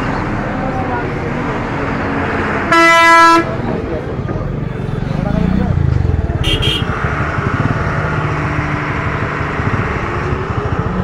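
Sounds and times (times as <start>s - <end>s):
voices: 0.0s - 7.0s
street noise: 0.0s - 11.0s
vehicle horn blast: 2.7s - 3.5s, 6.4s - 6.9s.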